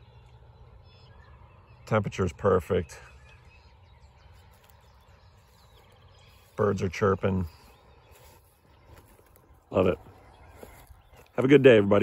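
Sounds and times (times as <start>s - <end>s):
faint birds chirping: 0.0s - 12.0s.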